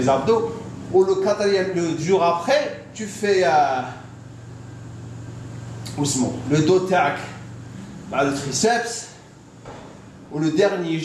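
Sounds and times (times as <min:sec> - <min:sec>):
low ventilation hum: 0:00.0 - 0:11.0.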